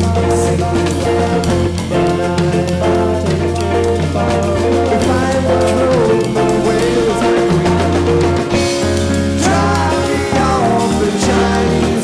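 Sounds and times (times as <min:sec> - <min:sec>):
bass: 0:00.0 - 0:12.0
drum kit playing: 0:00.0 - 0:12.0.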